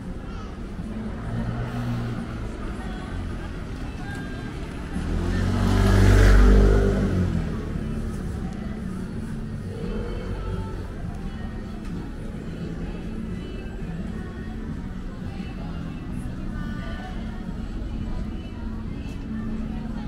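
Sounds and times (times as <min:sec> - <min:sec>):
street background noise: 0:00.0 - 0:20.0
motor vehicle passing: 0:04.3 - 0:10.9.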